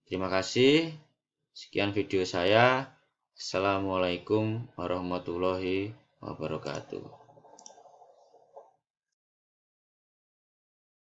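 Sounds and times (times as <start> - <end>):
faint clicks: 7.3 - 8.7.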